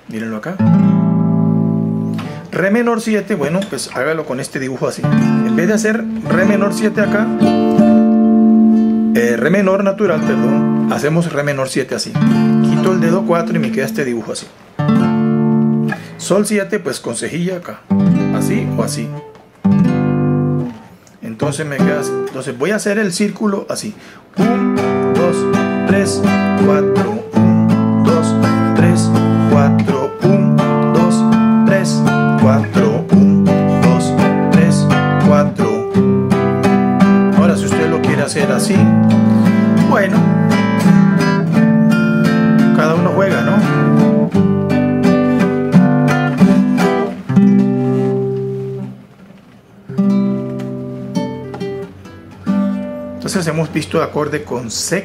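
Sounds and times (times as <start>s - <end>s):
classical guitar strummed: 0.6s - 16.5s, 17.8s - 22.8s, 24.3s - 54.2s.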